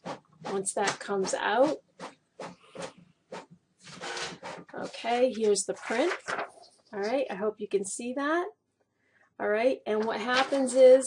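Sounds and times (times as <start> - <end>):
printer clicking and swishing: 0.0 - 6.4.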